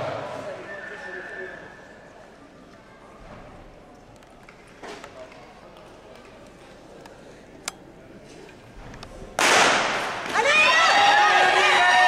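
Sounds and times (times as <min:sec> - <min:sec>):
spectators cheering and shouting: 0:10.2 - 0:12.0.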